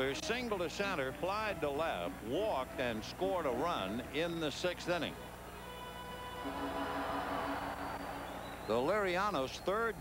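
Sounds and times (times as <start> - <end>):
ballpark organ music: 0.0 - 5.5, 6.2 - 10.0
crowd noise: 0.0 - 10.0.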